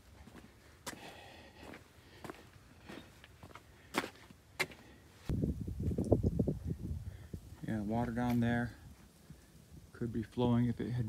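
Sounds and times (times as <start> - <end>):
footsteps on rock and gravel: 0.0 - 5.0.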